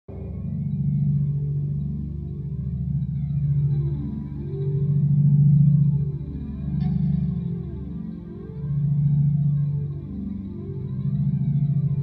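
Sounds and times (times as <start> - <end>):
low sustained notes: 0.1 - 12.0.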